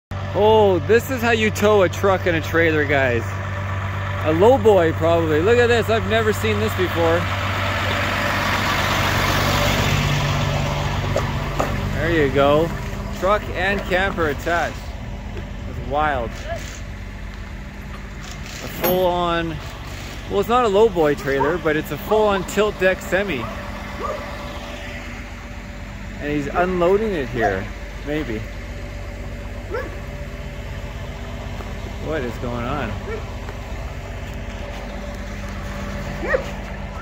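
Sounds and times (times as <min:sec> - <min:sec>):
diesel engine idling: 0:00.1 - 0:37.0.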